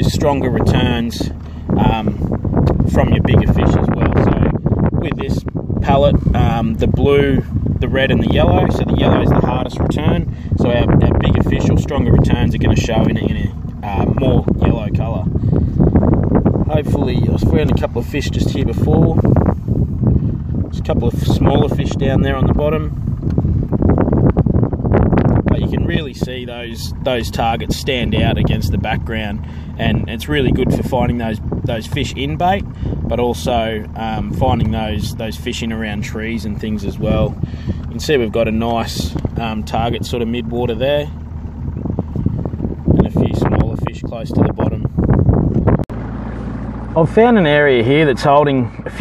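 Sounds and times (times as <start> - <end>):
boat noise: 0.0 - 49.0
wind buffeting microphone: 0.0 - 49.0.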